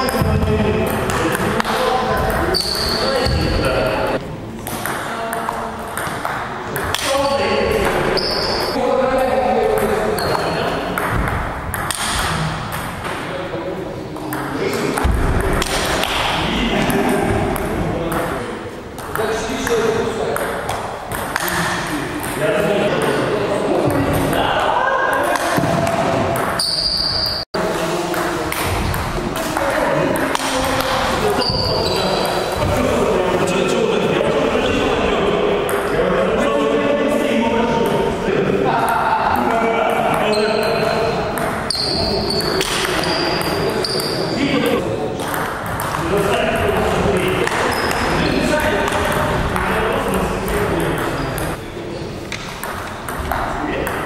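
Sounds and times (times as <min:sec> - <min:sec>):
people talking in a hall: 0:00.0 - 0:54.0.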